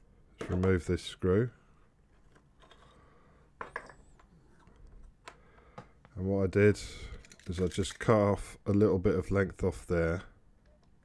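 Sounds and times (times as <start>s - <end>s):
plastic parts clicking: 7.1s - 8.9s.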